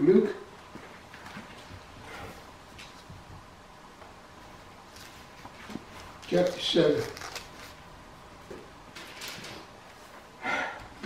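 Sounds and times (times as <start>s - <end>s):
book pages being turned: 4.9s - 7.8s.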